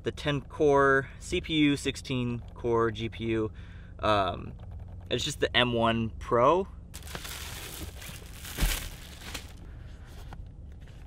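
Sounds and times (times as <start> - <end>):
plastic shrink wrap tearing: 7.0 - 9.6.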